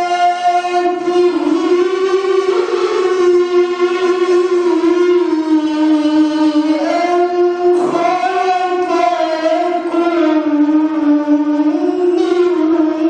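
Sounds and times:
man reciting melodically: 0:00.0 - 0:13.0.

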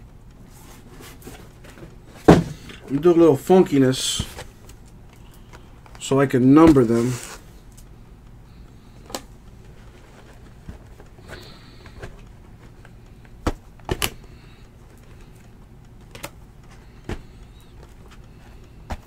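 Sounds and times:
low steady hum: 0:00.0 - 0:19.0.

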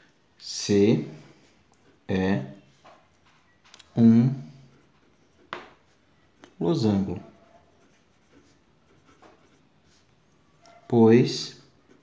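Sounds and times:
pen scratching on paper: 0:04.6 - 0:12.0.

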